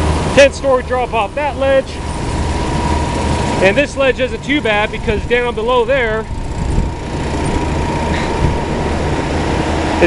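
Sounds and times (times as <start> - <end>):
cooling fans rushing: 0.0 - 10.0
thin whine: 0.0 - 10.0.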